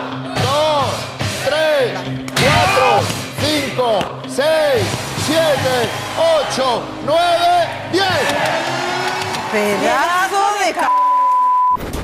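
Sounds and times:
music: 0.0s - 10.9s
high censor bleep: 10.9s - 11.8s.

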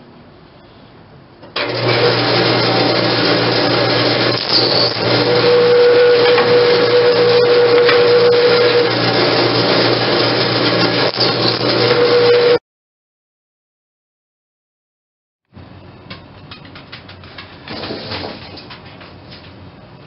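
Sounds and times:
drill bit drilling into wood: 1.6s - 12.6s
drill press motor humming: 1.6s - 12.6s
steady whine: 2.7s - 12.6s.

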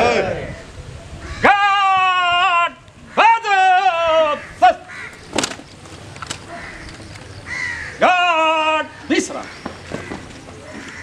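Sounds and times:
man shouting drill command: 1.5s - 4.9s.

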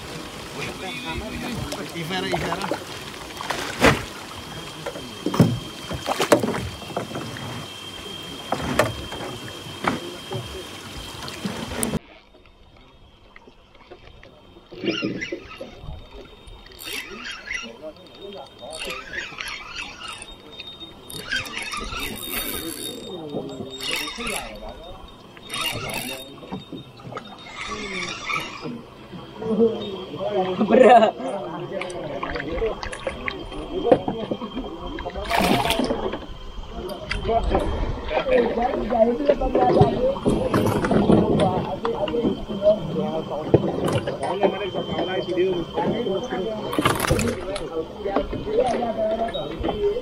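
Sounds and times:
fish splashing in water: 0.0s - 50.0s
knocks on boat: 5.3s - 7.3s.

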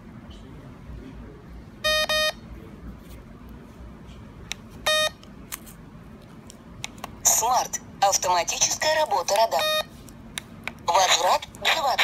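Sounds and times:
radar detector beeping: 1.8s - 2.4s, 4.9s - 5.2s, 9.5s - 9.9s.

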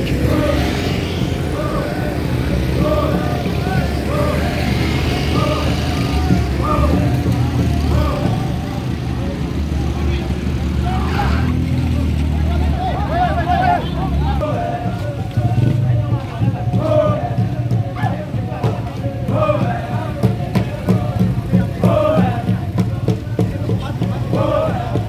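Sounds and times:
crowd calling out rhythmically: 0.0s - 25.0s
vehicle engine rumbling: 0.0s - 25.0s.

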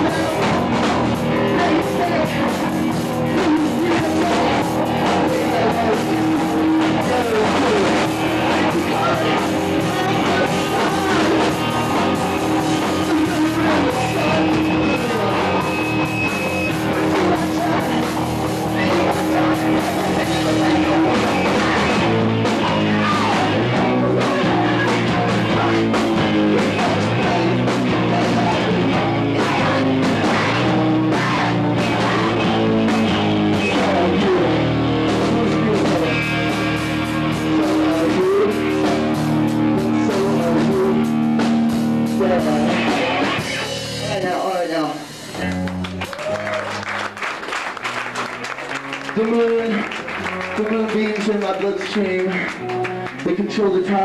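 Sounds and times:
bass guitar: 0.0s - 54.0s
drum kit: 0.0s - 54.0s
electric guitar: 0.0s - 54.0s.

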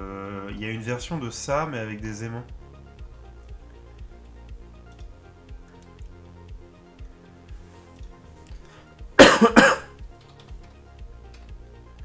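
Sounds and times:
quiet background music with beat: 0.0s - 12.0s
person coughing: 9.2s - 9.9s.

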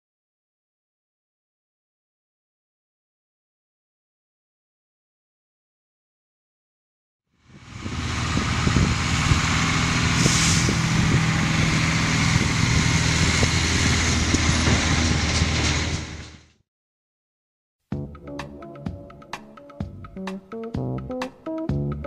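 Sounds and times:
truck engine running: 7.4s - 16.6s
brief hiss: 10.2s - 10.8s.

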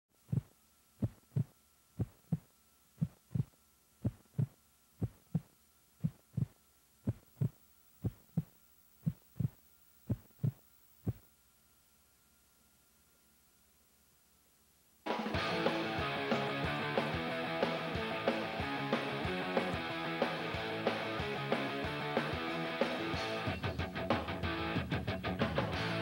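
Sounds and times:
heartbeat thumps: 0.2s - 11.3s.

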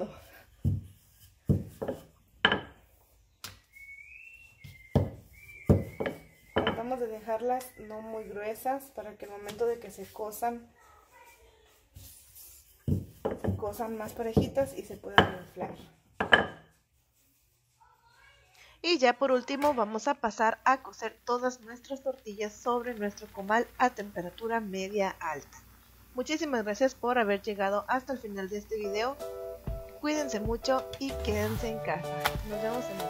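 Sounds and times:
rolling pin thumping dough: 0.6s - 2.9s, 4.6s - 7.2s, 12.7s - 16.7s
faint high whistling tone: 3.3s - 8.6s.

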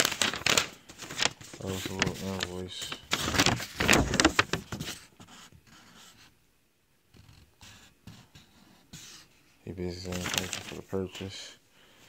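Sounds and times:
paper rustling: 0.0s - 6.2s, 9.8s - 11.4s
man speaking: 1.6s - 3.0s, 9.6s - 11.6s.

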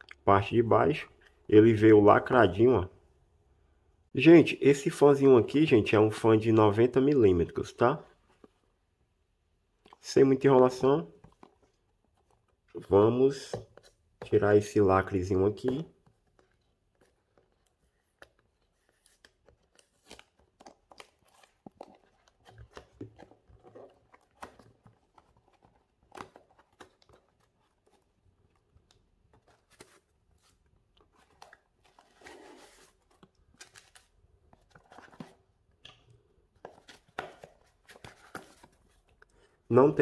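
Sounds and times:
cardboard box being unboxed: 29.3s - 35.5s.

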